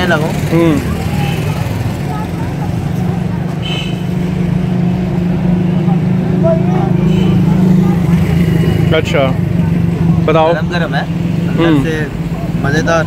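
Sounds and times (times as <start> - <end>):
idling vehicle engines hum: 0.0 - 13.0
voices in background: 0.0 - 13.0.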